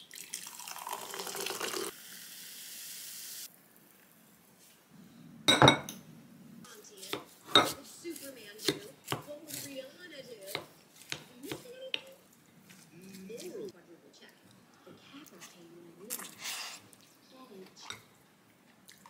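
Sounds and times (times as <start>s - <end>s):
soda pouring into a cup: 0.0s - 3.5s
soda fizzing: 0.0s - 4.0s
wooden spoon scraping a ceramic bowl: 7.0s - 9.8s.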